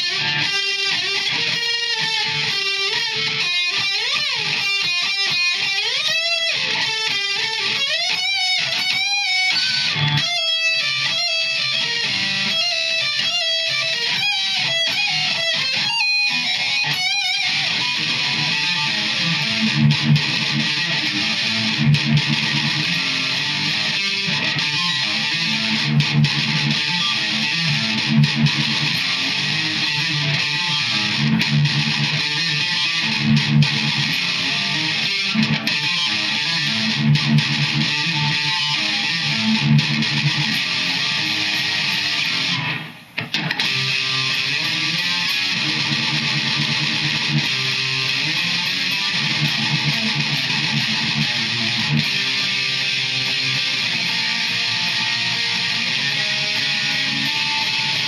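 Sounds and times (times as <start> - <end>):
electric guitar playing: 0.0 - 58.0.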